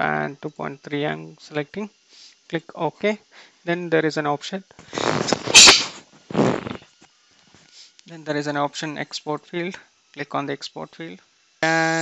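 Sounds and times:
breathy puff into microphone: 0:04.8 - 0:06.9.

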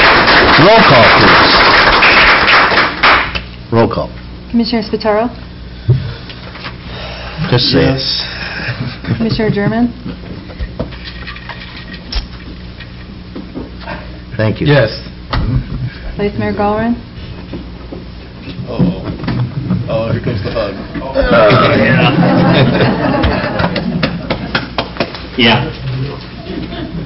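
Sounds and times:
low electrical hum: 0:00.0 - 0:27.0
person laughing: 0:26.4 - 0:27.0.

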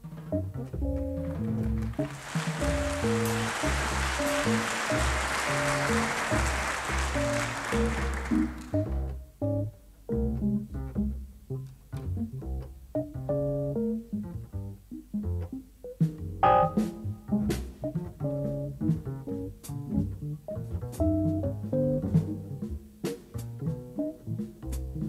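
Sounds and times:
drum kit with cymbal hits: 0:00.0 - 0:08.8, 0:16.0 - 0:20.0, 0:20.8 - 0:25.0
double bass: 0:00.0 - 0:25.0
electric piano chords and runs: 0:00.3 - 0:08.3, 0:16.4 - 0:17.1, 0:20.9 - 0:22.7.

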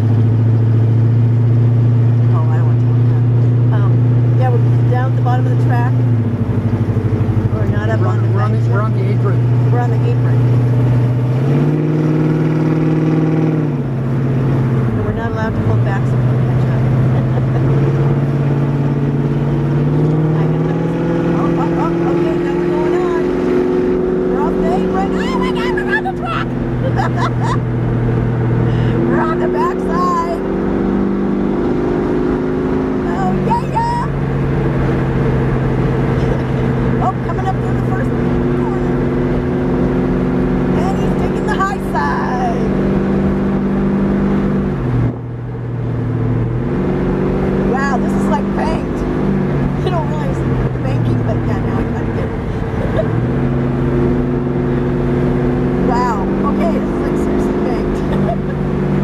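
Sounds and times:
car engine running inside car: 0:00.0 - 0:59.0.

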